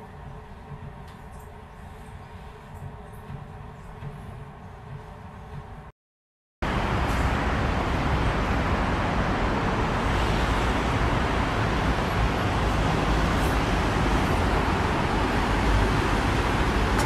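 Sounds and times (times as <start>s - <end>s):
city road traffic hum: 6.6s - 17.0s.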